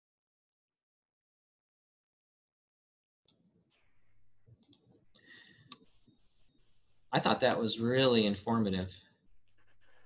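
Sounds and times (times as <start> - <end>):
faint room noise: 3.4 - 10.0
soft clicks: 4.5 - 5.0.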